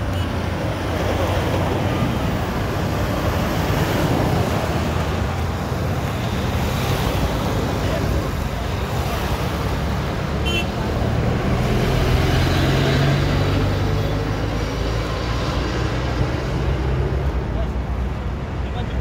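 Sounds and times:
road traffic rush: 0:00.0 - 0:19.0.

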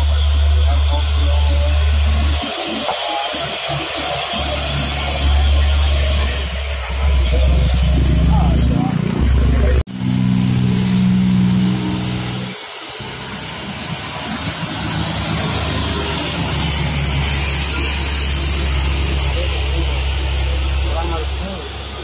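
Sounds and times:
steady drone: 0:00.0 - 0:22.0
truck diesel engine climbing: 0:00.0 - 0:22.0.

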